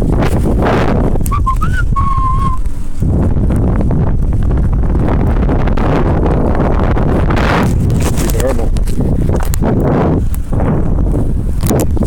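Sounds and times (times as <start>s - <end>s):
wind buffeting microphone: 0.0s - 12.0s
person whistling: 1.3s - 2.6s.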